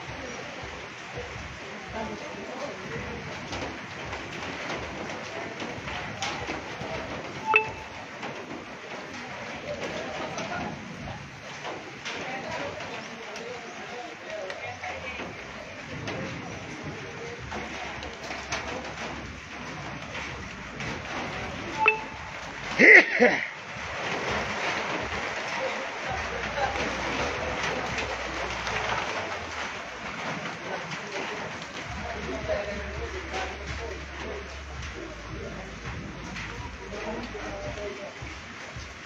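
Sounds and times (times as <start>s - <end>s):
faint voices: 0.0s - 39.0s
hailstones ticking on sheet metal: 0.0s - 39.0s
heavy rain on metal roof: 0.0s - 39.0s
brief high tone: 21.8s - 22.2s.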